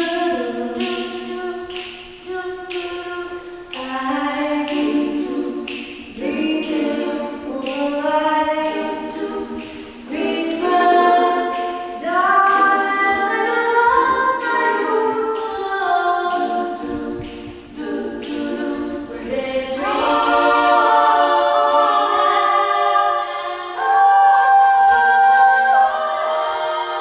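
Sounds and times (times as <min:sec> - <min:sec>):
female vocal ensemble singing: 0:00.0 - 0:27.0.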